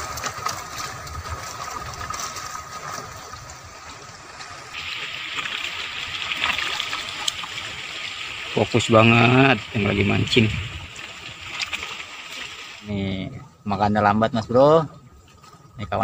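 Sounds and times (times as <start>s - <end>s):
water rushing and splashing: 0.0s - 16.0s.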